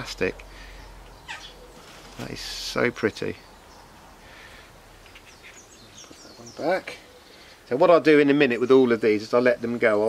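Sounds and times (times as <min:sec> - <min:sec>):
bird chirps: 0:00.6 - 0:02.0, 0:05.0 - 0:08.8.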